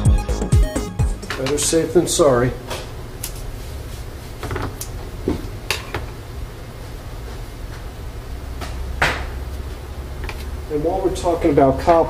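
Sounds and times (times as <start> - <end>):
low steady hum: 1.2 - 12.0.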